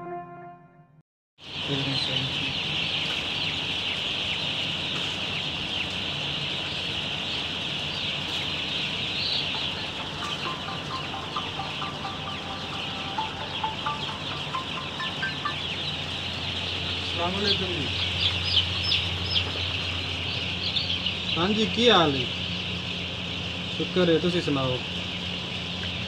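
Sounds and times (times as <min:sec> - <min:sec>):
chicks peeping: 0:01.4 - 0:26.0
steady low hum: 0:01.5 - 0:26.0.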